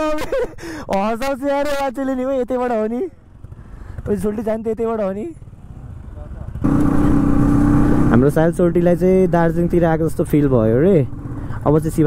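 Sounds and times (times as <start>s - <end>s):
motorcycle engine and road rumble: 0.0s - 12.0s.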